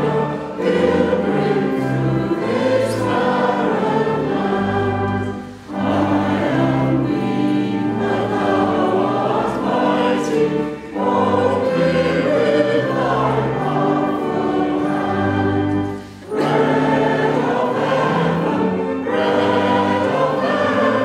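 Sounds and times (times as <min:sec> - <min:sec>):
congregation and choir singing a hymn: 0:00.0 - 0:21.0.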